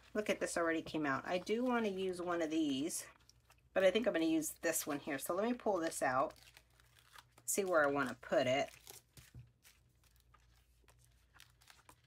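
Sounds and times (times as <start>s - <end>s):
paper pages rustling: 5.8s - 12.0s.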